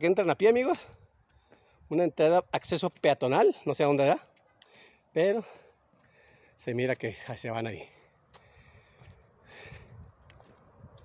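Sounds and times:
footsteps on dirt path: 4.3 - 6.4, 7.8 - 11.0
short breath: 8.0 - 10.0.

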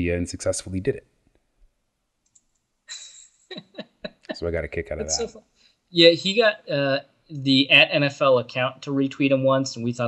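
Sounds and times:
faint clicks: 2.2 - 3.2.

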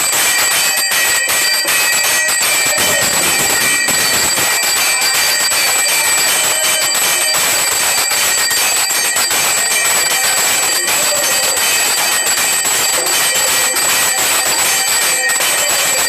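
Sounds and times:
temple bells clanging: 0.0 - 16.0.

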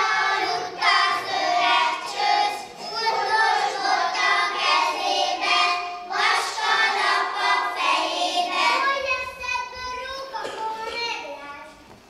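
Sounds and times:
children singing together: 0.0 - 10.9.

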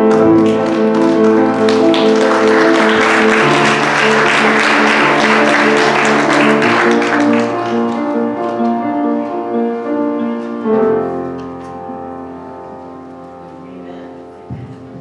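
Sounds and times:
people clapping: 0.0 - 8.6
worship band playing: 0.0 - 10.4.

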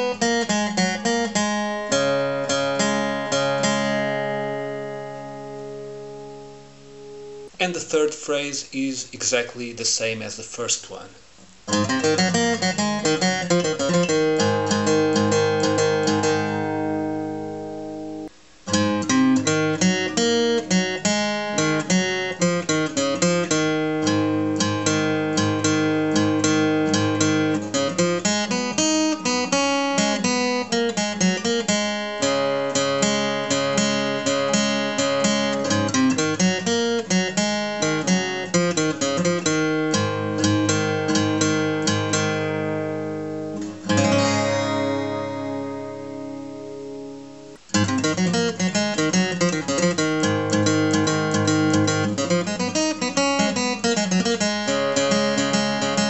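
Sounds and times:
acoustic guitar picked: 0.0 - 56.0.

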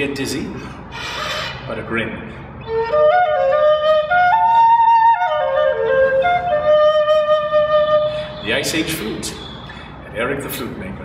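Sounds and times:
flute melody: 2.6 - 9.5.

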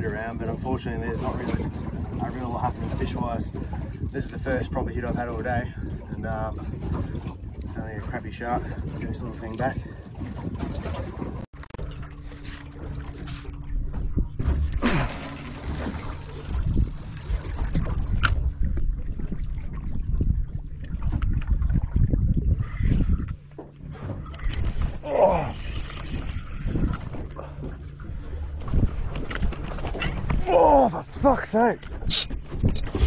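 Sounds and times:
steady low rumble: 0.0 - 32.8
water sloshing against boat hull: 0.0 - 33.0.

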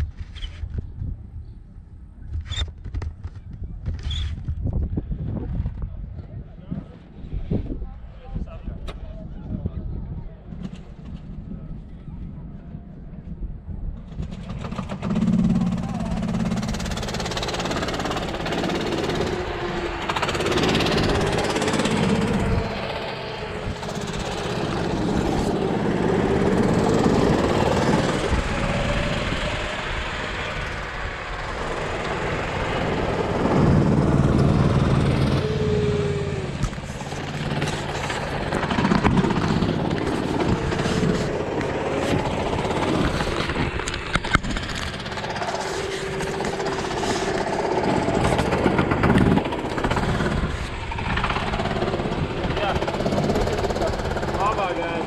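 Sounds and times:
go-kart engines idling: 14.0 - 55.0.

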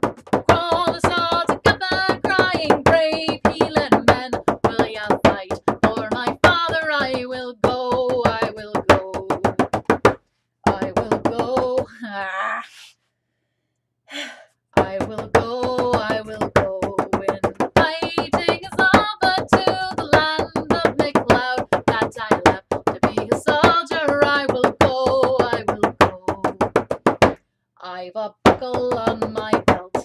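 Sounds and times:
woman singing: 0.4 - 9.7, 10.6 - 12.2, 14.2 - 26.7, 27.8 - 30.0.

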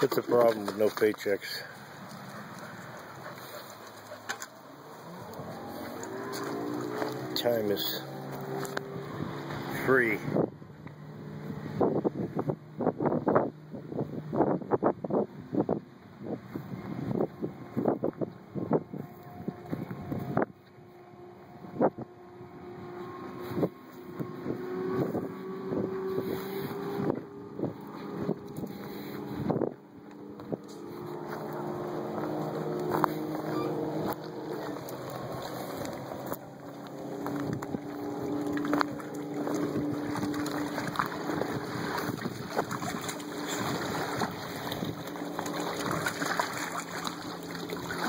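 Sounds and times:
dogs splashing in water: 0.0 - 9.9, 30.2 - 48.0
engine hum: 0.0 - 48.0
footsteps on forest floor: 30.4 - 39.7.

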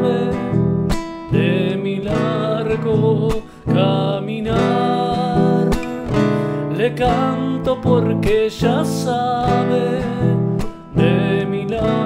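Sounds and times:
person singing: 0.0 - 0.7, 1.3 - 12.0
guitar strumming: 0.0 - 12.0.

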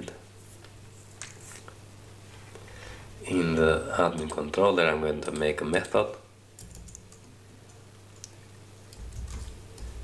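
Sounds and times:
low steady hum: 0.0 - 10.0
computer keyboard typing: 6.6 - 7.3, 8.9 - 10.0.

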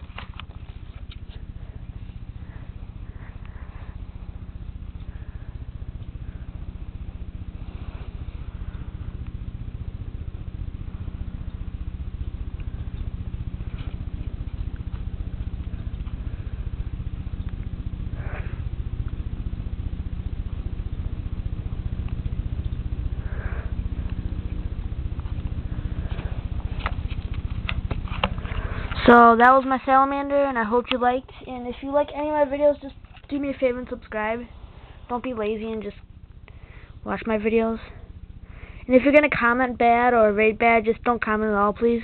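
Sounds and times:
faint rustles: 0.0 - 29.9
low electrical hum with buzz: 0.0 - 42.0.

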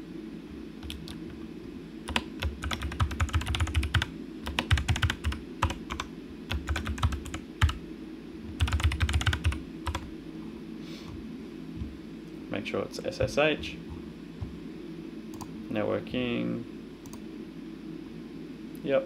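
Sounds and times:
typing on computer keyboard: 2.1 - 7.8, 8.6 - 10.1.

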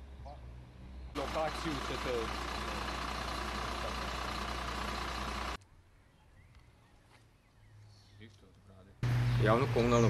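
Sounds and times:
truck diesel engine idling: 1.2 - 5.6.

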